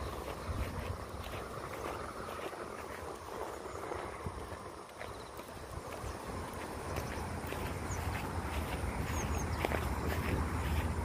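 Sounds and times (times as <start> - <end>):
footsteps on grass and paving: 0.0 - 11.0
outdoor background noise: 0.0 - 11.0.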